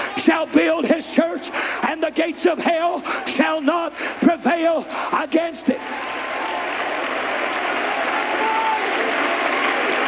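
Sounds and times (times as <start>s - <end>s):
congregation applauding: 5.8s - 10.0s.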